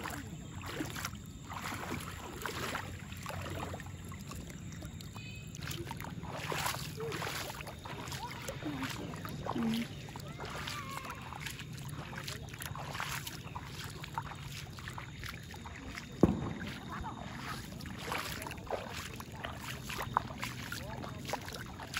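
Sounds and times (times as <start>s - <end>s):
bare feet splashing in water: 0.0s - 21.9s.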